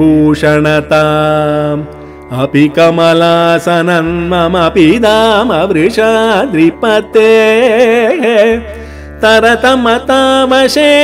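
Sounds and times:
person singing classical verse: 0.0 - 11.0.

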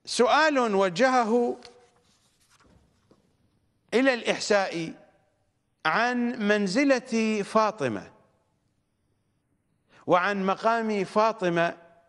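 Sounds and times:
paper rustling: 1.6 - 3.4.

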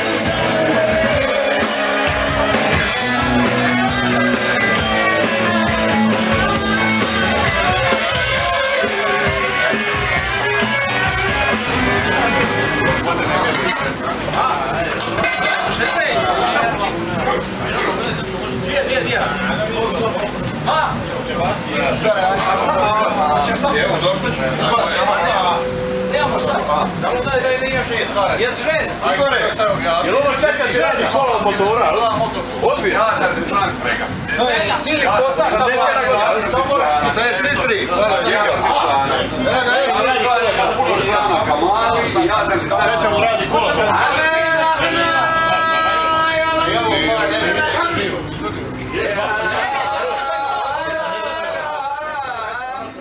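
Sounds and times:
live rock band music: 0.0 - 28.2
loud crowd chatter: 0.0 - 53.0
men talking: 0.0 - 53.0.

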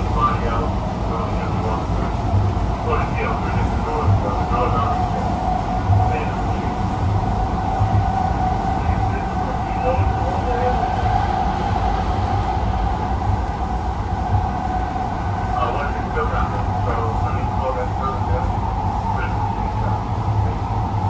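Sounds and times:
steady whine: 0.0 - 21.0
train wheels rumbling on rail: 0.0 - 21.0.

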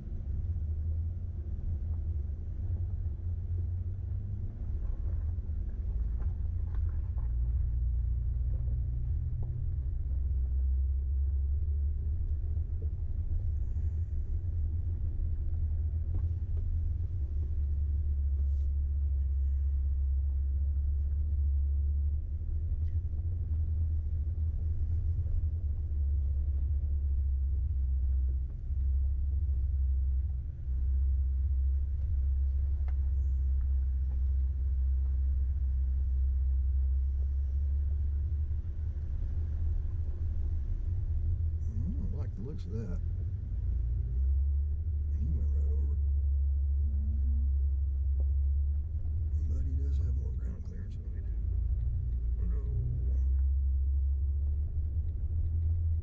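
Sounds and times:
off-road vehicle engine rumble: 0.0 - 56.0.

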